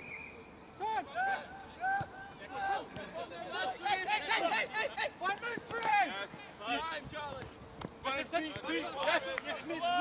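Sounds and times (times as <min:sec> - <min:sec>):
players shouting calls: 0:00.6 - 0:07.4, 0:08.0 - 0:10.0.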